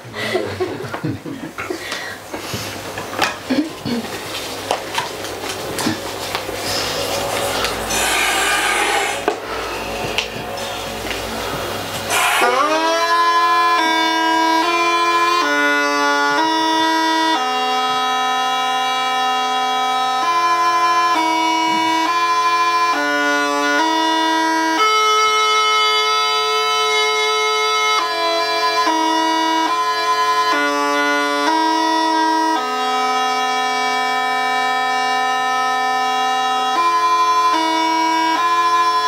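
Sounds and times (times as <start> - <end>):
bagpipe playing: 5.8 - 39.0.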